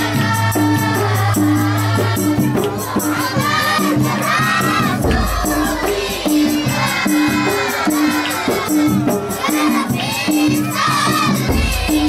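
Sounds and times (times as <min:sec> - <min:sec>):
children shouting and cheering: 0:00.0 - 0:12.0
religious music with drums and singing: 0:00.0 - 0:12.0.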